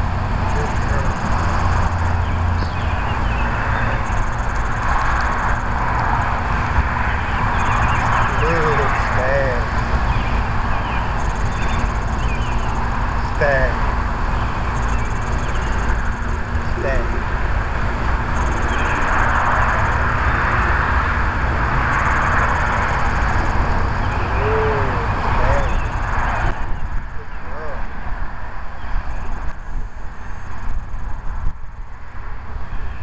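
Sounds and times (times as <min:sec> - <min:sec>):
faint arched chirps: 0:00.4 - 0:06.4, 0:07.0 - 0:17.4, 0:18.3 - 0:21.1, 0:21.9 - 0:27.9.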